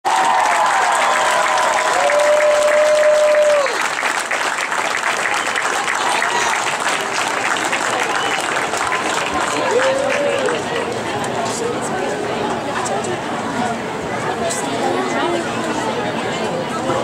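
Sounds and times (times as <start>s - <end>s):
cheering shouts: 0.0s - 4.0s, 5.2s - 6.8s, 8.2s - 10.8s
crowd applauding: 0.0s - 11.2s.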